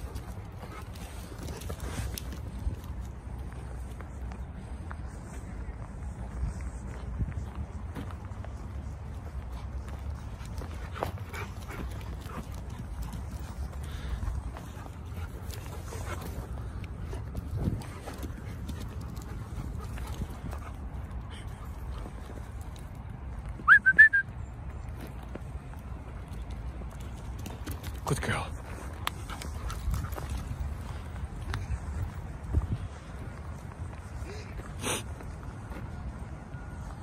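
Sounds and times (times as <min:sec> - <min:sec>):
dogs breathing: 0:00.0 - 0:23.0, 0:26.2 - 0:35.7
dogs scuffing on wood chips: 0:28.5 - 0:33.5.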